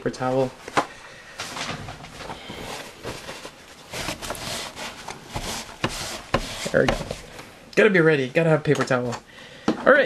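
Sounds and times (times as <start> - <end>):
paper towel rustling: 1.4 - 7.5.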